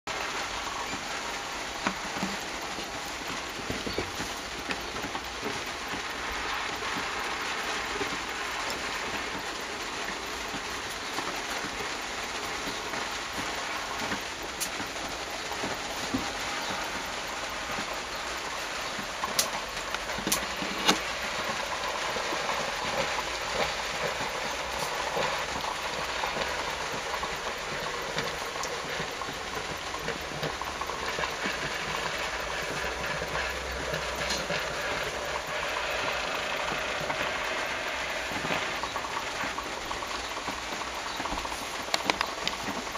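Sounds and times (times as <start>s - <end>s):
steam engine hissing and clattering: 0.1s - 42.9s.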